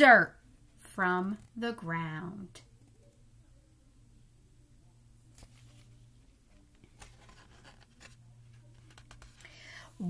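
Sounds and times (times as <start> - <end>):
cardboard book page turning: 5.3 - 9.6.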